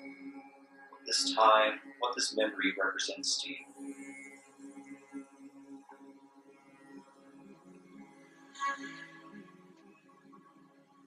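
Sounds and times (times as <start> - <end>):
ambient meditation music: 0.0 - 2.8, 3.5 - 11.0.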